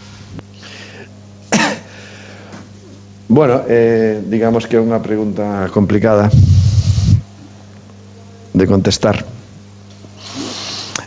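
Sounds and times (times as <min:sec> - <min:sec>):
low steady hum: 0:00.0 - 0:10.1
person coughing: 0:01.5 - 0:02.0.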